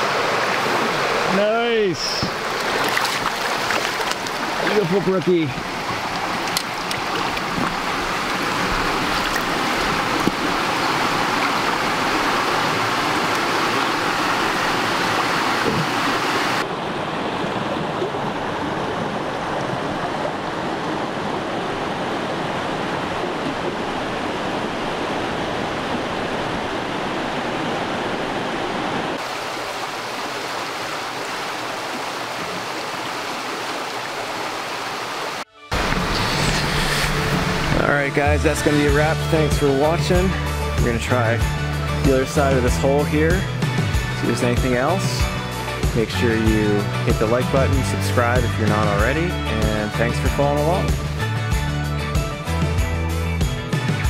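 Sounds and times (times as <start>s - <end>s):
stream rushing over rocks: 0.0s - 49.0s.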